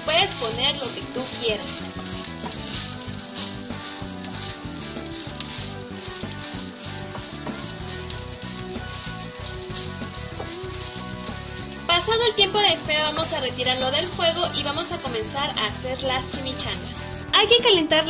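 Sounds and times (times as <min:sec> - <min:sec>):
food sizzling in a frying pan: 0:00.0 - 0:17.4
wooden spoon stirring: 0:00.0 - 0:17.4
background music: 0:00.0 - 0:18.0.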